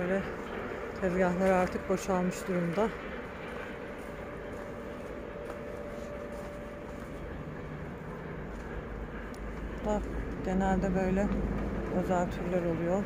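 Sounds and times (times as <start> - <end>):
background hum and low rumble: 0.0 - 13.0.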